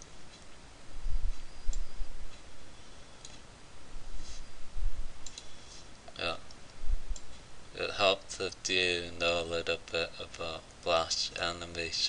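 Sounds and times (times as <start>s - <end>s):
person speaking: 6.1s - 6.6s, 7.7s - 12.0s.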